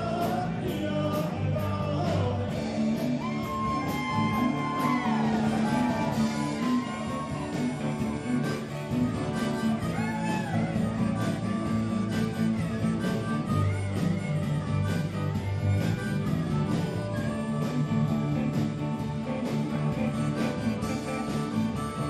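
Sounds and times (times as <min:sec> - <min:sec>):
bass: 0:00.0 - 0:22.0
drums: 0:00.0 - 0:22.0
electric guitar: 0:00.0 - 0:22.0
harmonica: 0:00.0 - 0:22.0.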